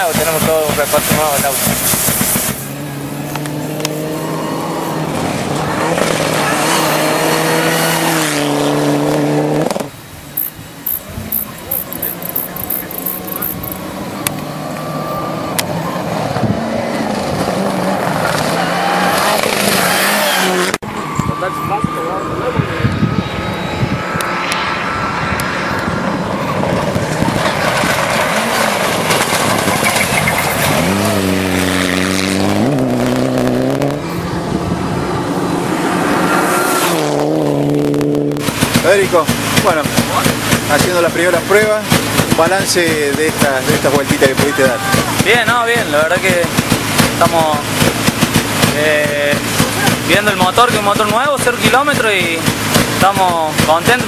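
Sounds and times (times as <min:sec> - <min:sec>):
rally car engine revving: 0:00.0 - 0:10.0, 0:10.9 - 0:54.0.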